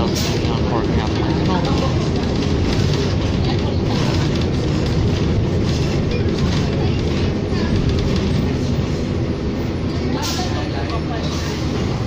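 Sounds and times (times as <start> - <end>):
bus engine drone: 0.0 - 12.0
road noise: 0.0 - 12.0.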